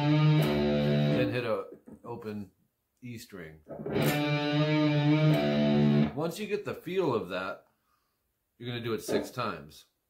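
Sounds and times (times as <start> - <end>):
electric guitar octave with bend: 0.0 - 1.3, 3.7 - 6.2.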